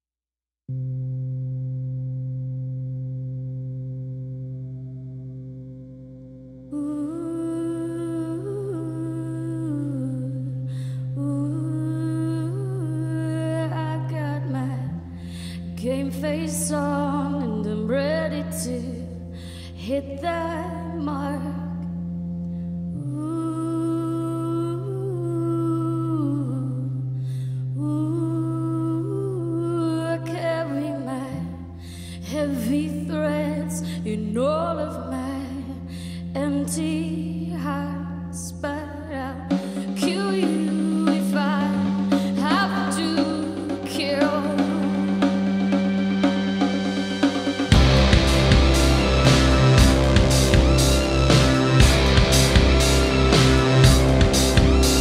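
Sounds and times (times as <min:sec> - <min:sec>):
sustained synthesizer tone: 0:00.7 - 0:38.2, 0:39.4 - 0:55.0
low held bass note: 0:39.4 - 0:55.0.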